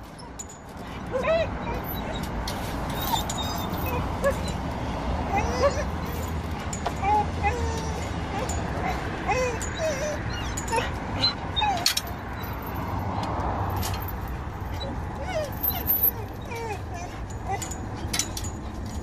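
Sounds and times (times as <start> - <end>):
dogs whining and whimpering: 0.0 - 12.8, 13.8 - 19.0.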